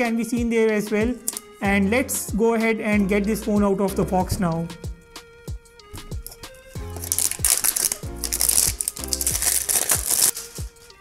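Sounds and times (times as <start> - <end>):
music with steady beat: 0.0 - 11.0
plastic shrink-wrap crinkling: 6.2 - 10.6.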